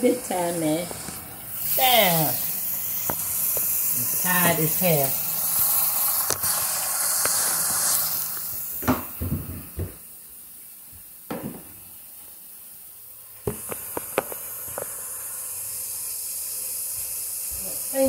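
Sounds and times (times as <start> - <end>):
running water hissing: 0.0 - 18.0.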